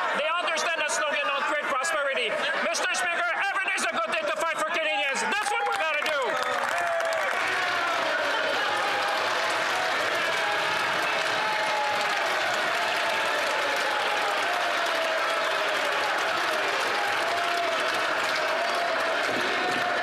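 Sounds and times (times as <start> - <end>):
crowd applause: 0.0 - 20.0.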